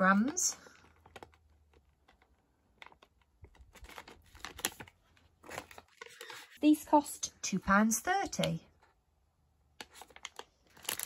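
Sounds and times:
plastic pouches crinkling: 0:00.0 - 0:06.6, 0:09.8 - 0:11.0.

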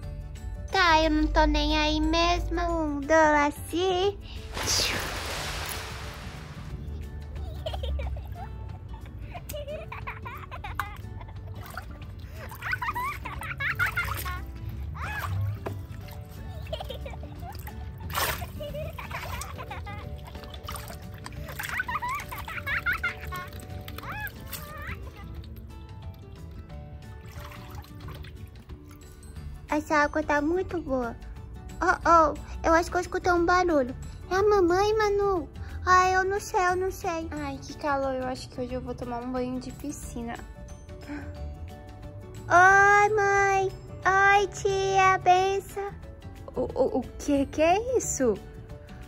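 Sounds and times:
background music: 0:00.0 - 0:49.0
water splashing in a pool: 0:04.4 - 0:07.0, 0:10.8 - 0:29.2.

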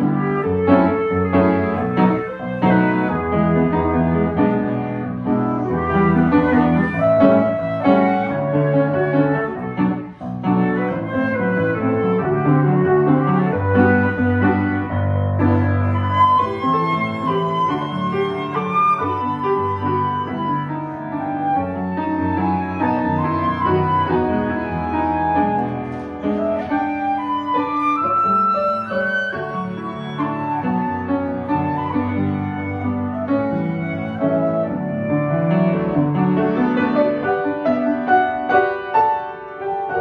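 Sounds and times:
flute melody: 0:00.0 - 0:40.0
piano accompaniment: 0:00.0 - 0:40.0.

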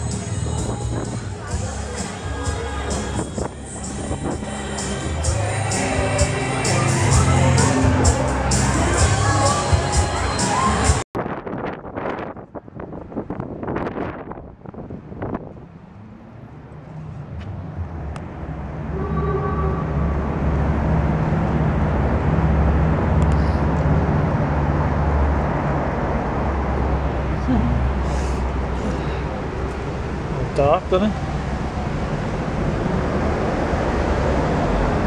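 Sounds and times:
crowd noise: 0:00.0 - 0:11.0
fairground music: 0:00.0 - 0:11.0
low rumble of street traffic: 0:00.0 - 0:35.0.

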